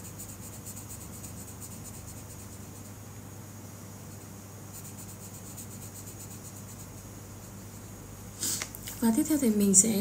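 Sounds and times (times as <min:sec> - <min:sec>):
pencil shading on paper: 0:00.0 - 0:02.9, 0:04.7 - 0:08.0
steady low hum: 0:00.0 - 0:10.0.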